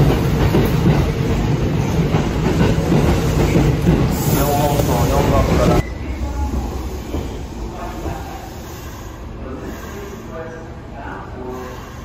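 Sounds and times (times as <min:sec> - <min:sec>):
low rumble of standing trains: 0:00.0 - 0:12.0.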